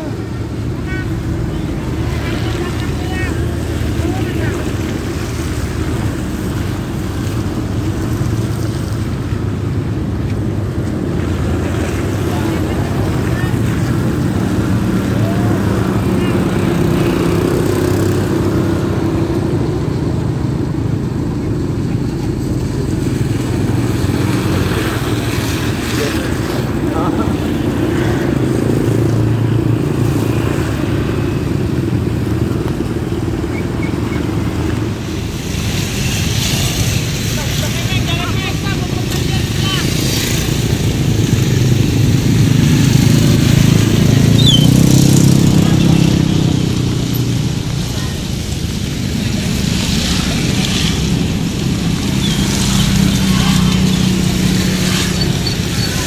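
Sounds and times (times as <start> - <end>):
motorcycles passing: 0.0 - 56.0
traffic passing on wet road: 0.0 - 56.0.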